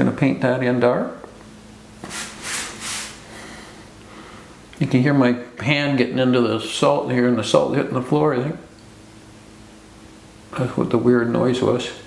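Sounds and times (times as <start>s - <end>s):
hand rubbing salt crystals on paper: 2.0s - 3.2s.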